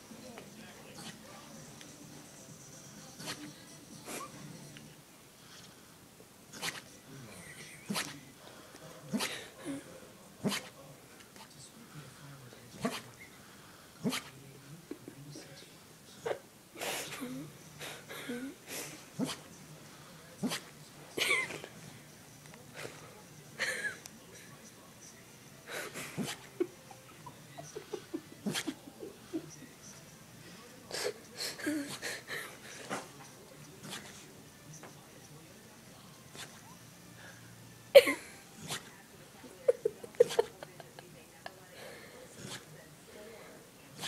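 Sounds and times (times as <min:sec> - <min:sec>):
dog breathy huff: 0:17.8 - 0:19.5, 0:25.7 - 0:26.5, 0:38.6 - 0:38.9, 0:41.8 - 0:42.7.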